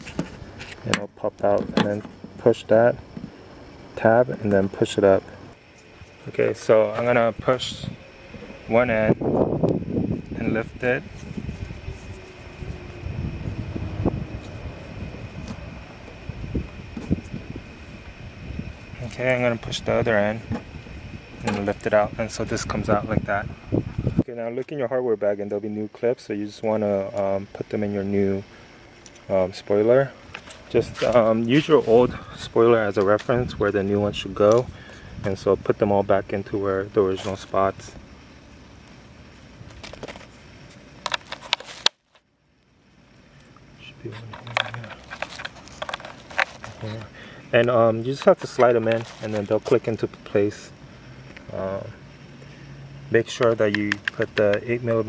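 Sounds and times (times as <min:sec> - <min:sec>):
low steady rumble: 0:00.0 - 0:55.0
quiet steady hiss: 0:00.0 - 0:55.0.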